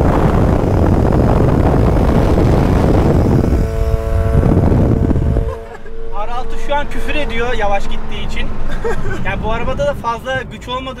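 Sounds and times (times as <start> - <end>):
motorcycle engine tone: 0.0 - 7.1
car wind and road noise: 0.0 - 11.0.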